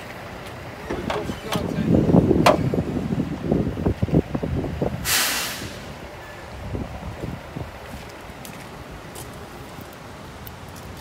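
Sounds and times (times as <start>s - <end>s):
truck hood knocks and clunks: 0.8s - 1.8s, 2.4s - 2.8s
short hiss: 5.0s - 6.0s.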